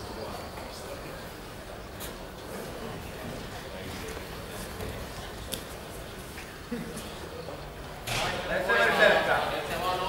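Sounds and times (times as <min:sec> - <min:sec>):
crowd noise in hall: 0:00.0 - 0:10.0.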